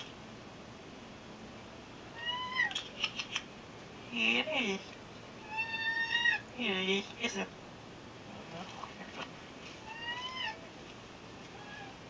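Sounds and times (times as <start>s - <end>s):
cat meowing: 2.1s - 2.8s, 5.4s - 6.4s, 9.8s - 10.6s, 11.5s - 12.0s.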